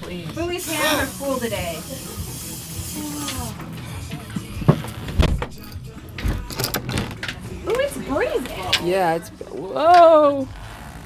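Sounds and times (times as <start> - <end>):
aerosol spray can hissing: 0.6 - 3.7.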